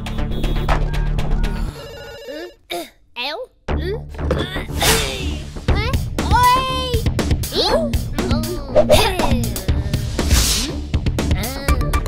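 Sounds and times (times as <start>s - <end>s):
background music: 0.0s - 12.0s
telephone ringing: 1.6s - 2.6s
cartoon voice vocal sounds: 11.3s - 12.0s.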